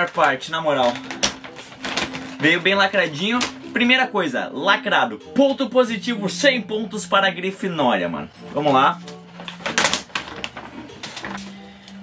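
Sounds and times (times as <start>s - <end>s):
paper bag crinkling and tearing: 0.0s - 3.6s, 9.4s - 11.5s.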